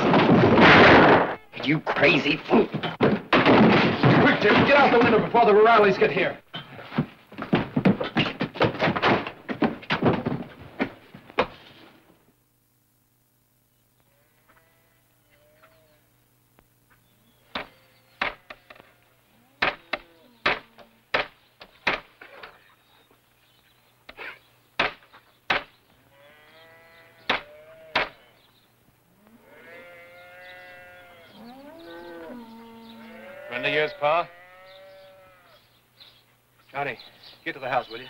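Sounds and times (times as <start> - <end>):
cattle mooing: 26.1 - 28.1, 29.2 - 35.6
sharp knocks: 27.3 - 28.2.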